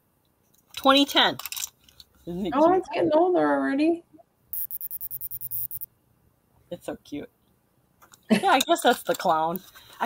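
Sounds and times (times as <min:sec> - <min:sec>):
rapid high clicks: 0:04.6 - 0:05.9.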